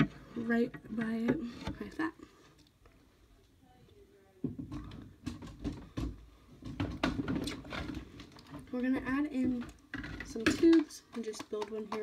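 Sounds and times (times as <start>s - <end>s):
plastic items knocking and clicking: 0.0s - 2.1s, 4.4s - 12.0s.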